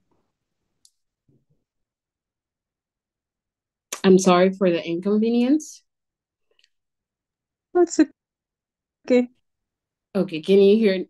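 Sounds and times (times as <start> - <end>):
click: 0.8 - 1.0
voice: 3.9 - 5.8, 7.8 - 8.2, 9.1 - 9.3, 10.2 - 11.0.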